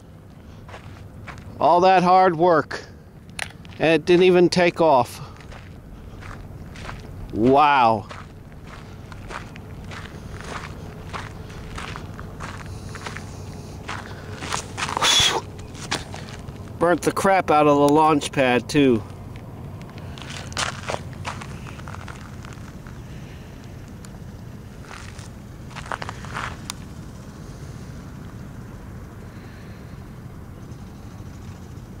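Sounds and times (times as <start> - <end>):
low background hum: 0.0 - 32.0
low steady rumble: 0.0 - 32.0
footsteps on sandy dirt: 0.2 - 1.8, 3.5 - 16.9, 19.0 - 27.2.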